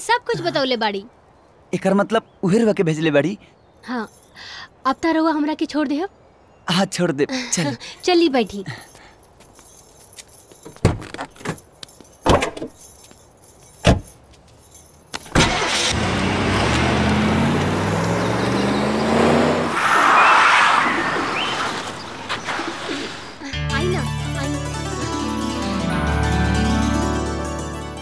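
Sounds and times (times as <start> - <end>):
car engine driving off: 15.3 - 23.4
music: 23.5 - 28.0.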